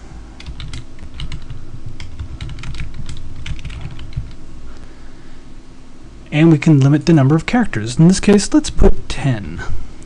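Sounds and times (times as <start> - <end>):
computer keyboard typing: 0.4 - 4.4.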